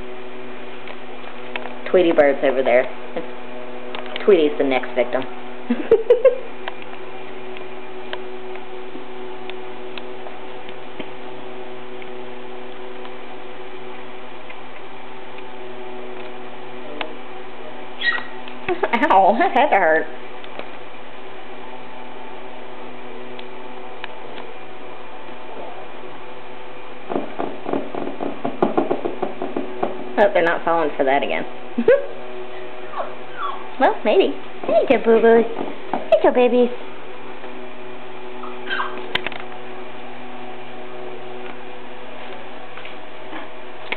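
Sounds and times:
steady hum with hiss: 0:00.0 - 0:43.9
puppy squeak: 0:18.0 - 0:18.4, 0:32.9 - 0:33.7, 0:38.4 - 0:39.0.

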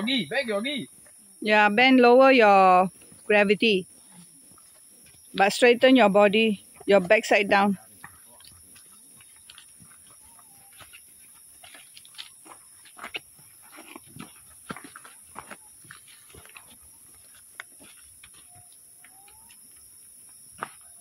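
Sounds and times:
forest insects droning: 0:00.0 - 0:21.0
footsteps crunching on dry leaves: 0:08.6 - 0:19.4.

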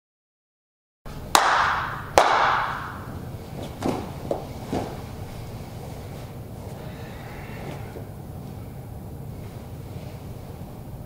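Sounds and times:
hand claps in large hall: 0:01.2 - 0:04.5
soft thuds on a mat: 0:03.6 - 0:05.1.

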